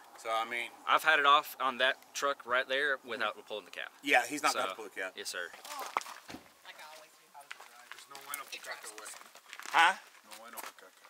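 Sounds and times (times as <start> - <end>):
people talking indistinctly: 0.2 - 11.0.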